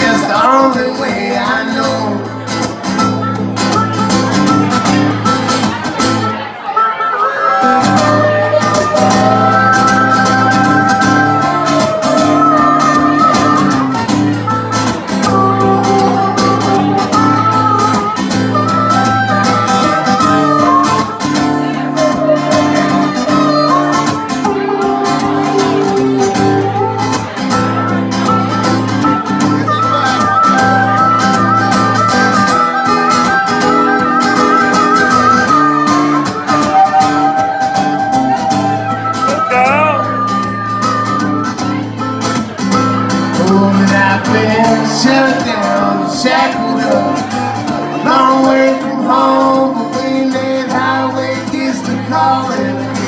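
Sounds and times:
harmonica bending held notes: 0.0s - 53.0s
strummed acoustic guitar: 0.0s - 53.0s.

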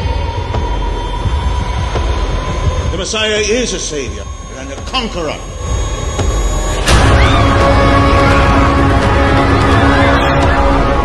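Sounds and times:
thin high drone: 0.0s - 10.8s.

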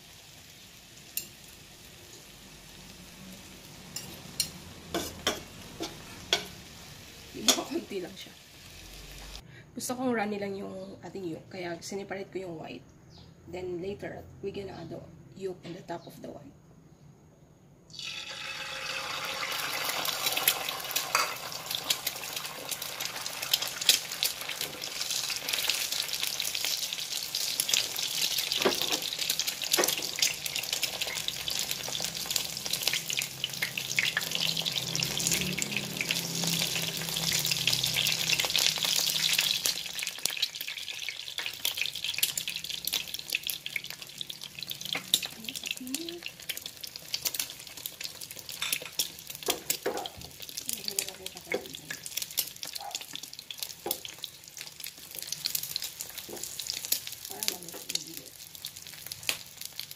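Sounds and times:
egg frying in hot oil: 0.0s - 9.4s, 17.9s - 59.9s.

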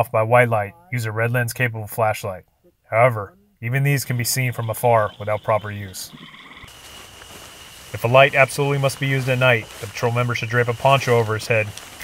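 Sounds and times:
frogs calling: 3.8s - 12.0s.

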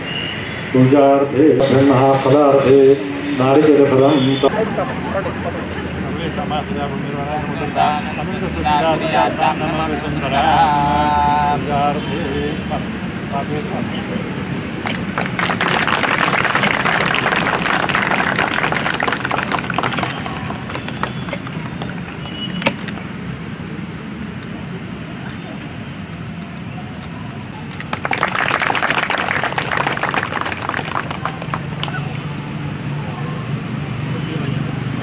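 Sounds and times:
murmur of voices: 1.0s - 14.5s
crowd clapping: 14.8s - 23.1s, 27.7s - 32.4s.

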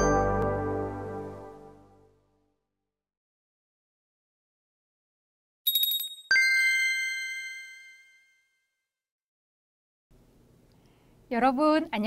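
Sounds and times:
bright bell-like ding: 5.7s - 8.4s
high shimmering tinkle: 5.7s - 8.5s.

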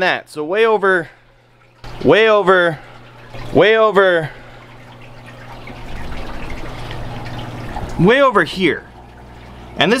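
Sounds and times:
low steady hum: 0.0s - 10.0s
water trickling from filters: 0.0s - 10.0s.

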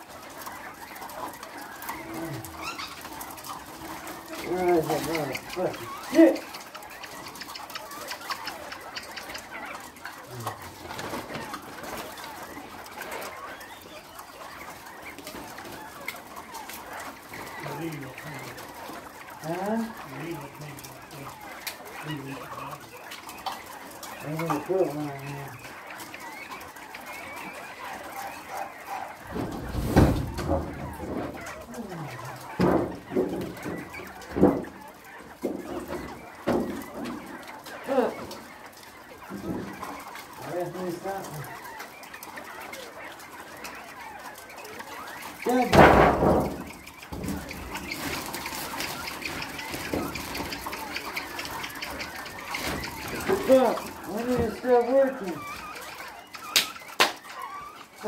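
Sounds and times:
quail calling: 0.0s - 58.0s
low voices: 1.9s - 6.7s, 10.2s - 11.6s, 29.3s - 34.8s
knocks and thumps of cleaning: 29.3s - 31.1s.

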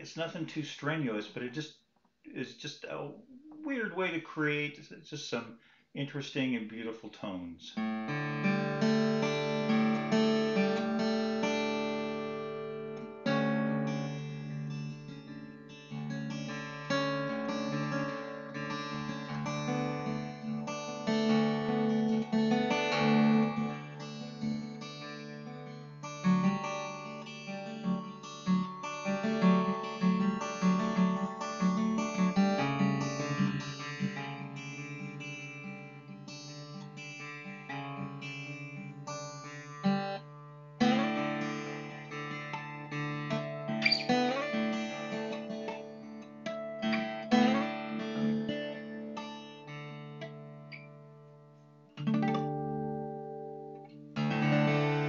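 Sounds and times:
acoustic guitar fingerpicking: 7.8s - 55.0s.

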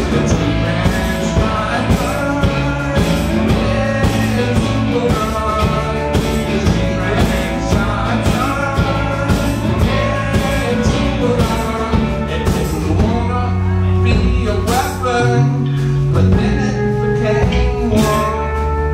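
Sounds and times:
acoustic guitar strumming: 0.0s - 18.9s
drum kit steady beat: 0.0s - 18.9s
man singing: 0.0s - 18.9s.

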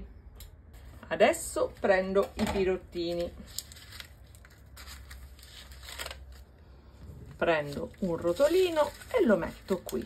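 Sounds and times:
paper liners rustling: 3.1s - 6.5s, 7.4s - 10.0s.

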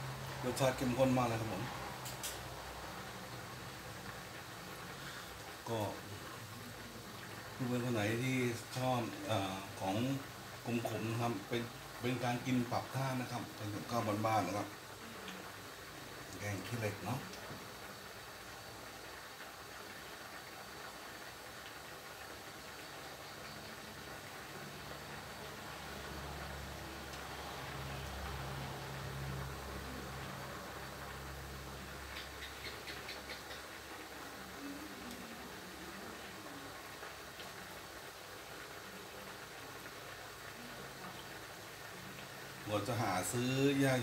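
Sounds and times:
curry simmering hiss: 0.0s - 44.0s.

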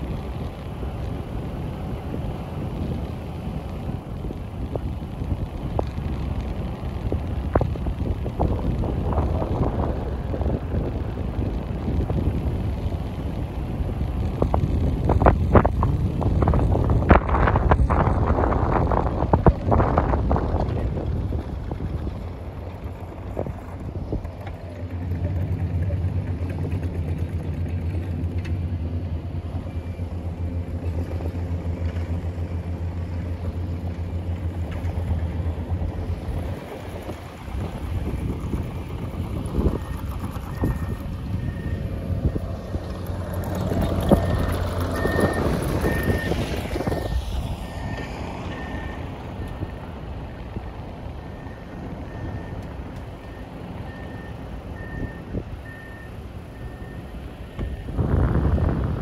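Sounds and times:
car engine hum: 0.0s - 59.0s
road noise: 0.0s - 59.0s.

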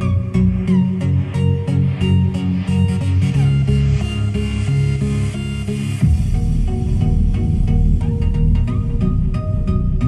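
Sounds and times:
electronic music with heavy bass: 0.0s - 10.0s.

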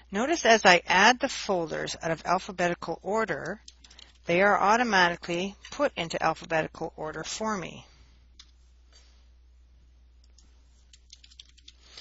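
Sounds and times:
low steady hum: 0.0s - 12.0s
computer keyboard and mouse clicking: 3.4s - 4.2s, 10.2s - 12.0s.

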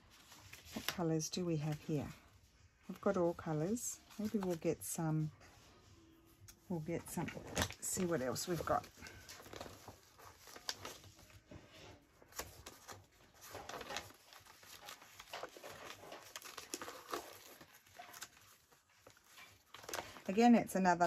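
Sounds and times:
paper rustling: 0.0s - 5.8s, 6.4s - 21.0s.

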